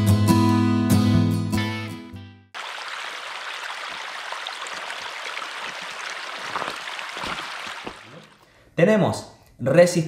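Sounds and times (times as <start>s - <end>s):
stream water rushing: 2.6s - 8.4s.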